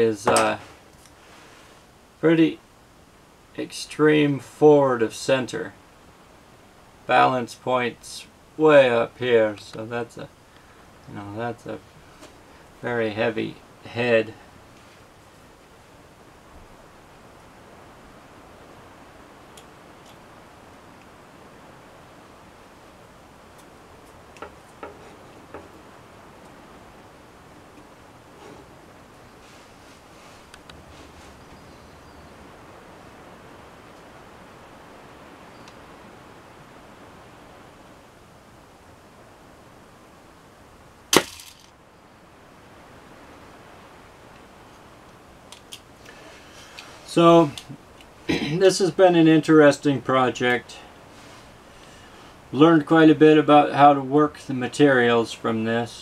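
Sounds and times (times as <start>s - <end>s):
room hiss: 0.0s - 56.0s
crossbow shot snapping: 41.1s - 41.7s.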